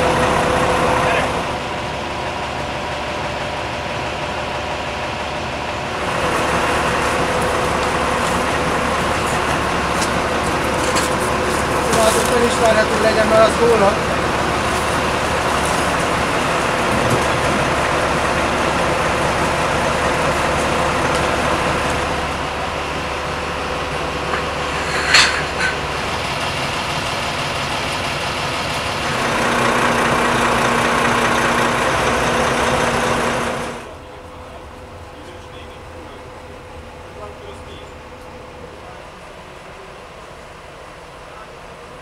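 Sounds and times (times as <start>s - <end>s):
vehicle engine running: 0.0s - 42.0s.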